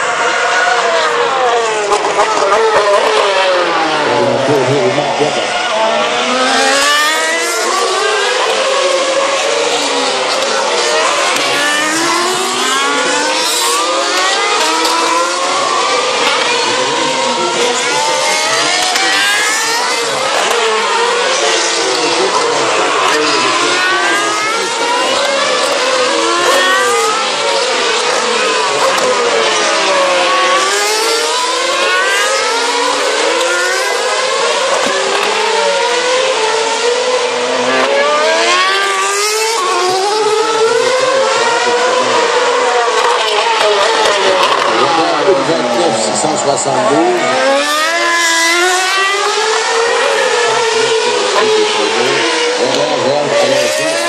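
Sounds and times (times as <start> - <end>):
racing car engines accelerating: 0.0 - 54.0.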